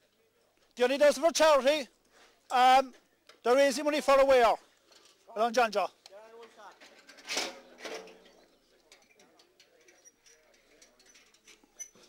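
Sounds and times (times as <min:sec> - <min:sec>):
faint background voices: 0:06.0 - 0:12.0.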